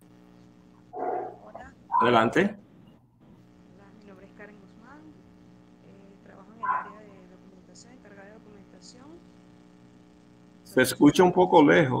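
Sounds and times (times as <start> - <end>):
steady low hum: 0.0 - 12.0
person speaking over video call: 6.6 - 7.1.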